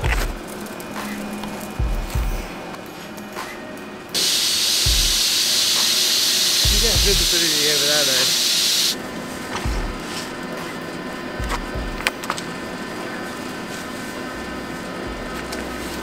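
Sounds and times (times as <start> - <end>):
faint background music: 0.0 - 16.0
loud steady hiss: 3.6 - 11.4
low thumps: 6.6 - 7.4, 9.6 - 10.1
man speaking: 6.6 - 8.5.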